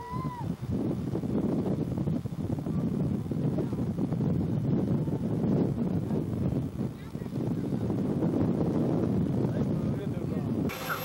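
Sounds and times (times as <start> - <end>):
boat engine rumble: 0.0 - 11.0
wind on microphone: 0.0 - 11.0.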